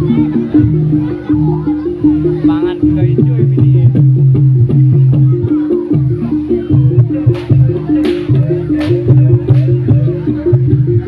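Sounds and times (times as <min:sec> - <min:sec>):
gamelan music: 0:00.0 - 0:11.0
quick drum strokes: 0:01.4 - 0:11.0.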